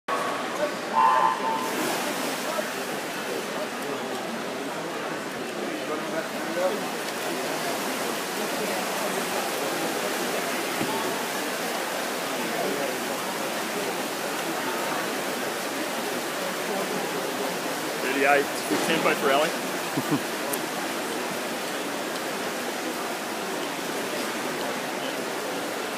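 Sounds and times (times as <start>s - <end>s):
many voices: 0.1s - 25.9s.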